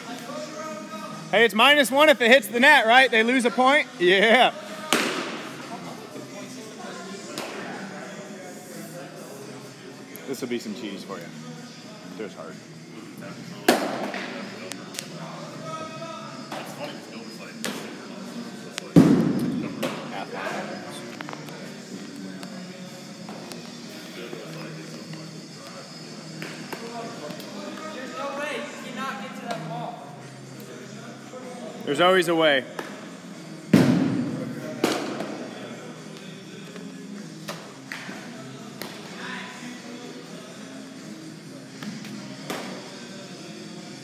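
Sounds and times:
murmur of distant voices: 0.0 - 44.0
music: 0.0 - 44.0
baseball impact cracks: 4.9 - 5.4.

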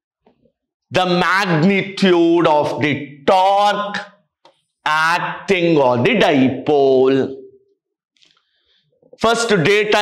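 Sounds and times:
man's voice: 0.9 - 4.2, 4.8 - 7.5, 9.2 - 10.0.

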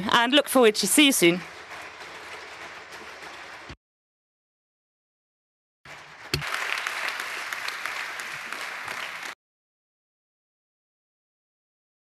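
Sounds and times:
audience applauding: 0.6 - 3.8, 5.9 - 9.4.

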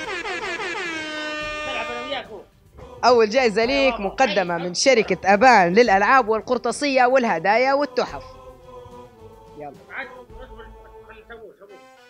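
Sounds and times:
horn-like tone sliding down: 0.0 - 2.4.

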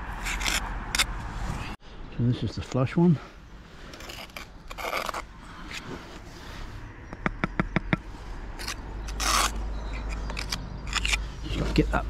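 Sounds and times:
trowel scraping mortar: 0.1 - 1.1, 3.8 - 6.2, 8.6 - 12.0.

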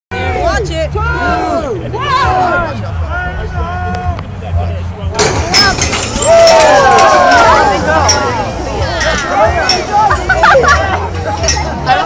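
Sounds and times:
crowd talking: 0.1 - 12.0.

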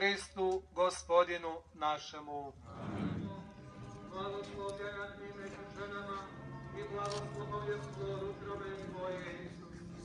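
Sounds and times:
man's voice: 0.0 - 10.0
footsteps on stone paving: 3.4 - 10.0.

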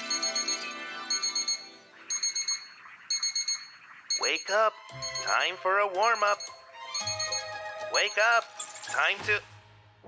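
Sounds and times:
alarm clock beeping: 0.0 - 8.4.

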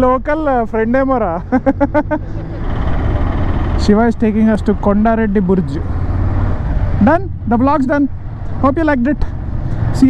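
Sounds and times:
motorcycle engine rumbling: 0.0 - 10.0
person laughing: 1.4 - 3.4.

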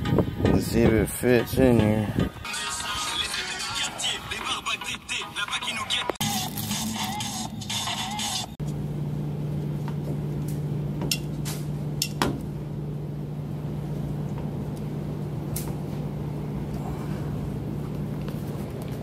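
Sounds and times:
background music: 0.0 - 8.6
low mechanical hum: 6.0 - 19.0.

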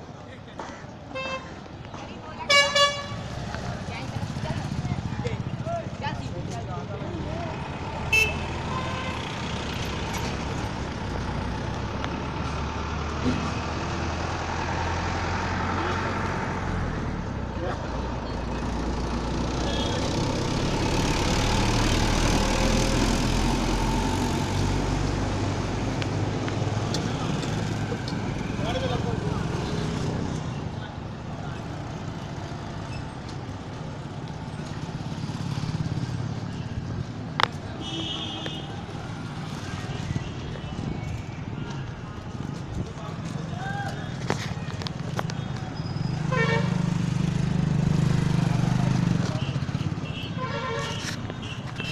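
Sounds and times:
street noise: 0.0 - 51.9.

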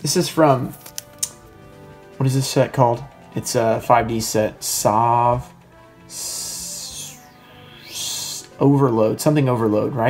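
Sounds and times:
soft background music: 0.0 - 10.0
high-pitched hissing: 6.1 - 8.5.

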